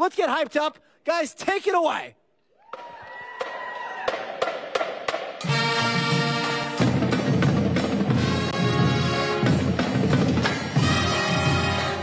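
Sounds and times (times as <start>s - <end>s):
bass drum: 4.1s - 12.0s
band playing brass and drums: 4.4s - 12.0s.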